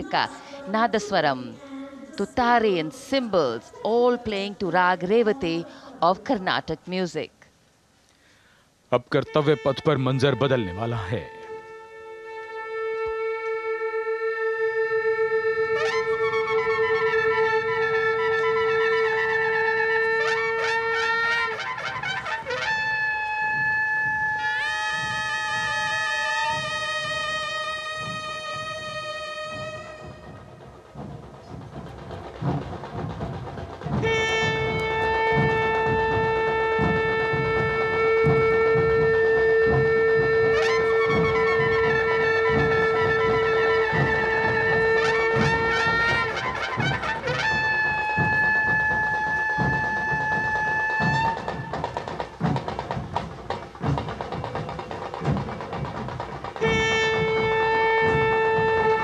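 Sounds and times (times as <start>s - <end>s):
steady drum beats: 0.0s - 1.6s, 8.7s - 59.0s
reedy wind melody: 8.9s - 59.0s
wind drone note: 22.3s - 51.8s.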